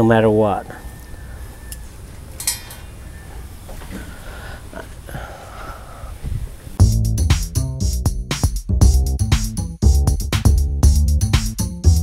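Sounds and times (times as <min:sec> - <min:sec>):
metallic clink: 0:02.4 - 0:02.9.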